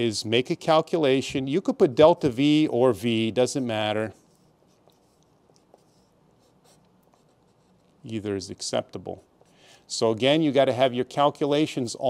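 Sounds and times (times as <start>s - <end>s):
pencil writing on paper: 3.6s - 8.0s.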